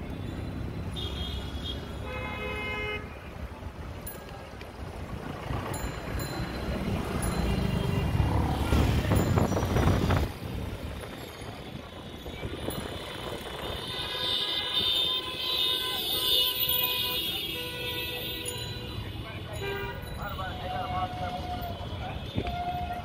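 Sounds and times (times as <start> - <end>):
traffic engines and road noise: 0.0 - 23.0
vehicle horns: 0.9 - 3.3, 11.8 - 23.0.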